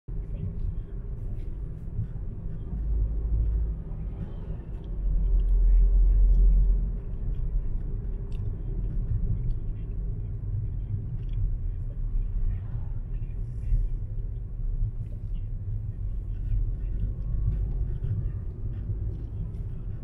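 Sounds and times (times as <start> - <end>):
car driving with engine rumble: 0.1 - 20.0.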